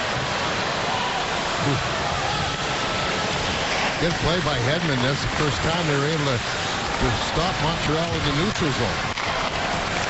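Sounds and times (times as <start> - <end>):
arena crowd roar: 0.0 - 10.0.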